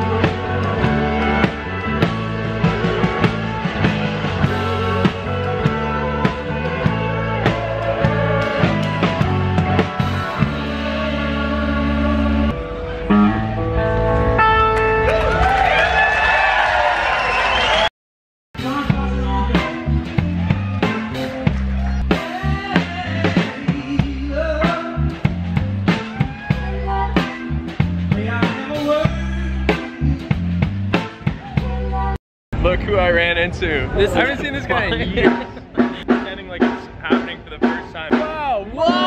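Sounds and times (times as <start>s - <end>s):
drum kit steady beat: 0.0s - 11.0s, 18.6s - 31.8s, 34.2s - 39.0s
live rock band playing: 0.0s - 15.6s, 18.6s - 32.1s, 33.8s - 39.0s
sliding wavering guitar lead: 10.6s - 15.3s.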